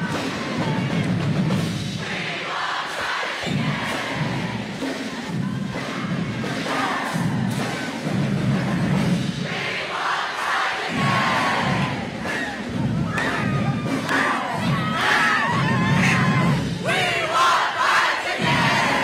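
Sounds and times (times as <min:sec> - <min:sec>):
crowd cheering and yelling: 0:00.0 - 0:09.1, 0:09.8 - 0:19.0.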